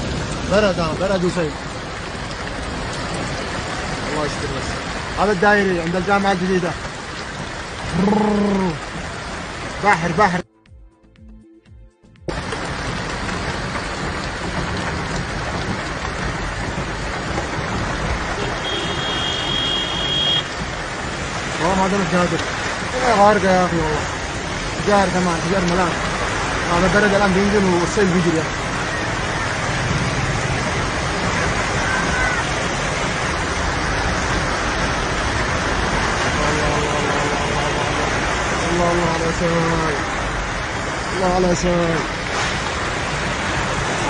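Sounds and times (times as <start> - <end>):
floodwater rushing: 0.0 - 10.5, 12.3 - 44.0
heavy rain: 0.0 - 10.5, 12.3 - 44.0.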